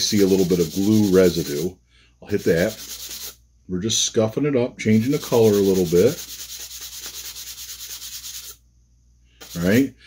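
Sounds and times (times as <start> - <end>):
sanding block rubbing shaft: 0.0 - 1.7, 2.3 - 3.4, 5.1 - 8.6, 9.4 - 9.8.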